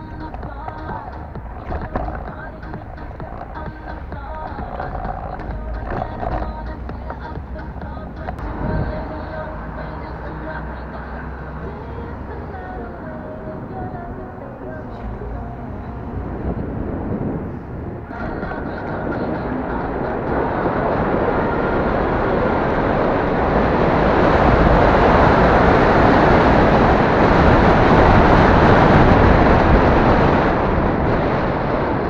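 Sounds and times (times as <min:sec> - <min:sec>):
scooter road noise: 0:00.0 - 0:32.0
wind rushing on microphone: 0:00.0 - 0:32.0.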